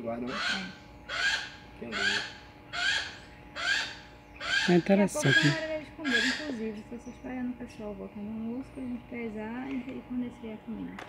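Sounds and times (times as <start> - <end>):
hawk giving harsh raspy calls: 0.2 - 6.6.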